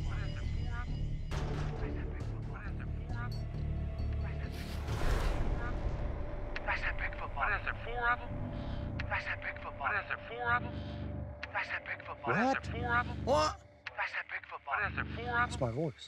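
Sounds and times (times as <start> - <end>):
men's voices over phone speaker: 6.6 - 16.0.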